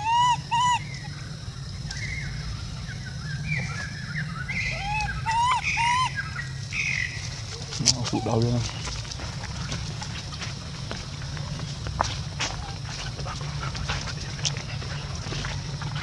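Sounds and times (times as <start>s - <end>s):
high chirps: 0.0s - 7.4s
infant monkey coo calls: 0.0s - 16.0s.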